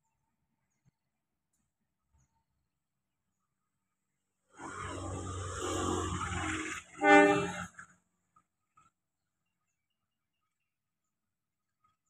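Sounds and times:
train horn blast: 5.9s - 7.8s.

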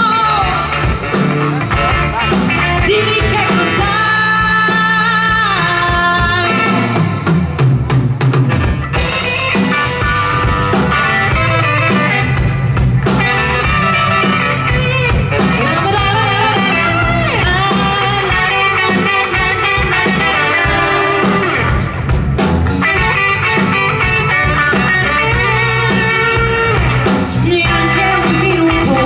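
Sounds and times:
woman singing: 0.0s - 1.0s, 2.7s - 7.0s, 15.4s - 19.5s, 27.3s - 29.0s
saxophone: 0.0s - 7.4s, 8.5s - 29.0s
live pop-rock band: 0.0s - 29.0s.

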